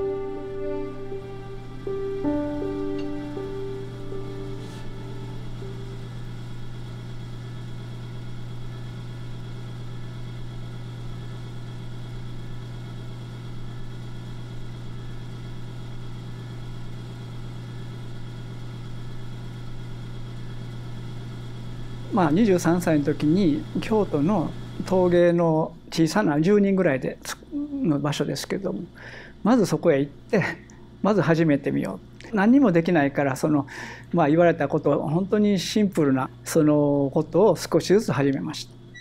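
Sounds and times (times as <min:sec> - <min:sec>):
soft music: 0:00.0 - 0:06.9
steady low hum: 0:00.0 - 0:39.0.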